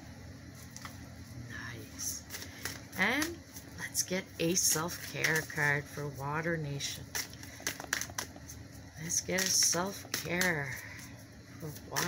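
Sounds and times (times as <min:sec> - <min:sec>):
cards being shuffled: 0:02.2 - 0:06.3, 0:06.9 - 0:11.0.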